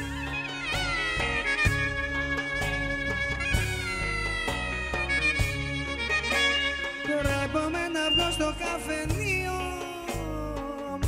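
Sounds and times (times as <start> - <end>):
folk clarinet melody: 0.0 - 8.9
band accompaniment with bass: 0.0 - 11.0.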